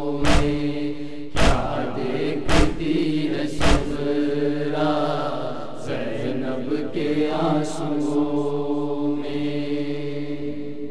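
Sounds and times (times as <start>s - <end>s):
person chanting a lament: 0.0s - 10.6s.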